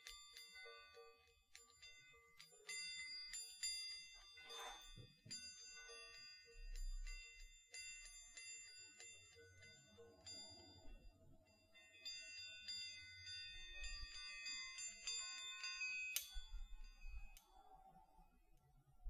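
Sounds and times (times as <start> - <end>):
chiming balls ringing tones: 0.0 - 18.3.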